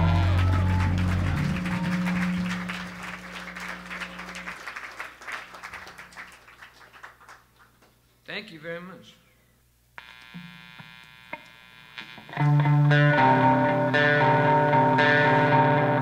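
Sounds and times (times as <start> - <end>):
audience clapping and cheering: 0.0 - 8.0
rock band chord ringing: 12.2 - 16.0.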